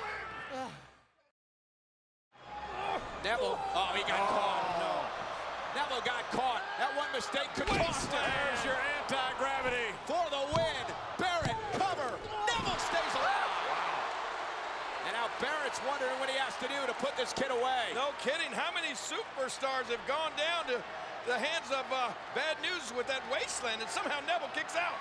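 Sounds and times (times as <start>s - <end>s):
crowd shouting: 2.4s - 25.0s.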